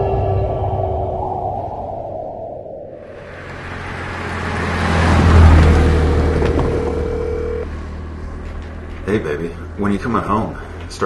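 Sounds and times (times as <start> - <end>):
deep steady rumble: 0.0 - 11.0
car passing: 2.3 - 11.0.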